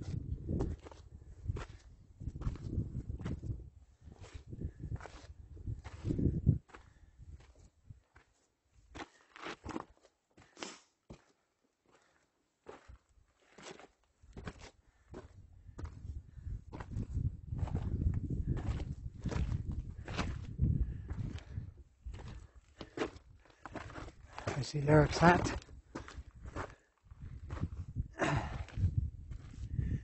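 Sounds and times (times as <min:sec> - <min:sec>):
boots crunching on gravel: 0:22.8 - 0:26.9.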